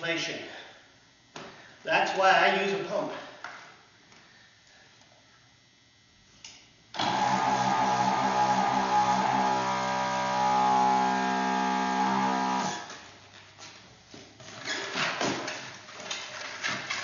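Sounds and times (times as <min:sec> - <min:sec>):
electric balloon inflator humming: 0:07.0 - 0:13.0.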